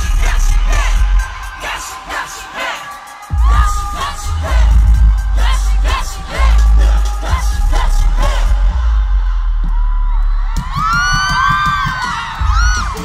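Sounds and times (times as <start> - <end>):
crowd screaming and whooping: 0.0 - 13.0
live pop song over loudspeakers: 0.0 - 13.0.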